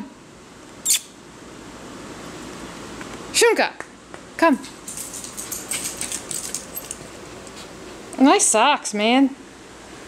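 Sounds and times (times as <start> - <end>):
person kissing call: 0.8 - 1.2.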